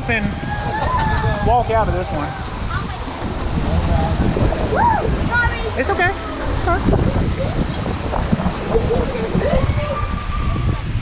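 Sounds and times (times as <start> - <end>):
faint voices: 0.0 - 11.0
wind buffeting microphone: 0.0 - 11.0.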